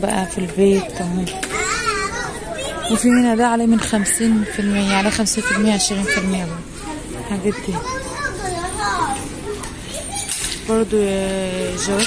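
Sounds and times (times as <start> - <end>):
woman speaking: 0.0 - 1.3, 2.9 - 6.6, 7.3 - 7.8, 10.7 - 12.0
children chattering and calling: 0.0 - 12.0.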